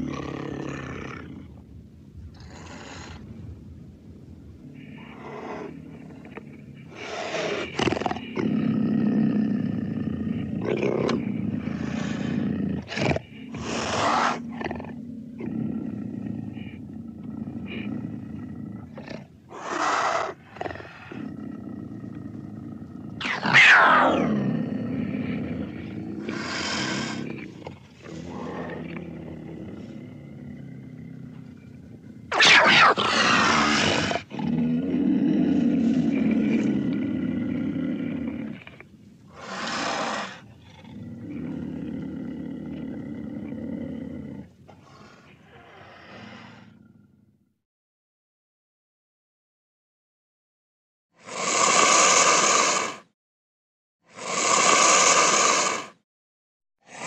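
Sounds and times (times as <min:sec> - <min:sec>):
big cat roars and snarls: 0:00.0 - 0:01.6, 0:02.3 - 0:03.4, 0:04.6 - 0:47.5, 0:51.2 - 0:53.1, 0:54.1 - 0:56.0
low steady growl: 0:00.0 - 0:19.0, 0:20.4 - 0:47.5.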